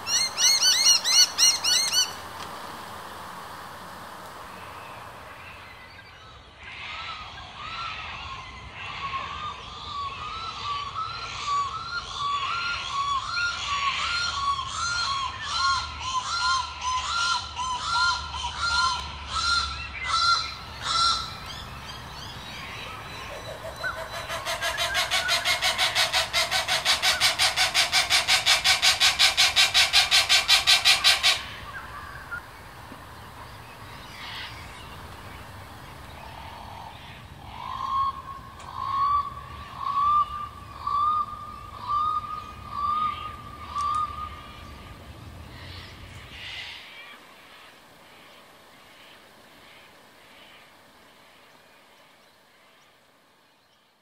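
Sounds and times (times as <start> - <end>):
cuckoos honking calls: 0.0 - 5.6, 14.6 - 32.6.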